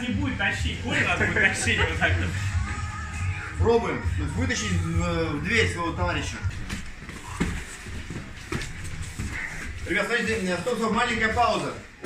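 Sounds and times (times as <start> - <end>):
feet shuffling: 6.0 - 12.0
people grappling on foam mats: 6.1 - 12.0.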